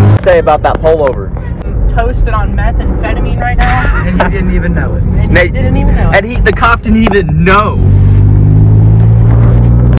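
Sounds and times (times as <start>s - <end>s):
car engine drone: 0.0s - 10.0s
road rumble: 0.0s - 10.0s.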